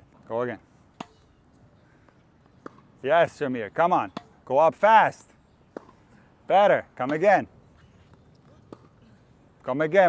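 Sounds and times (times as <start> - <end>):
tennis ball hit by racket: 1.0 - 1.3, 2.6 - 2.9, 4.1 - 4.4, 5.7 - 6.0, 8.7 - 9.0.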